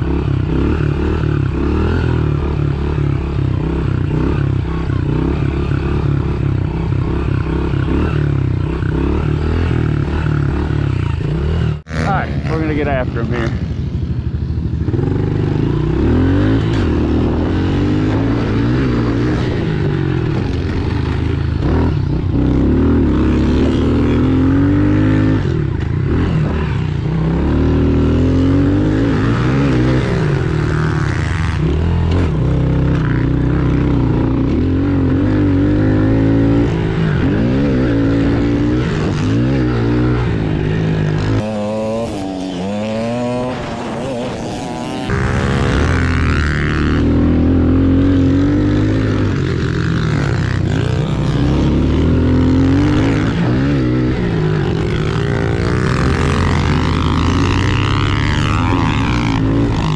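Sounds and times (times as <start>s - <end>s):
motorbike engine revving: 0.0s - 59.9s.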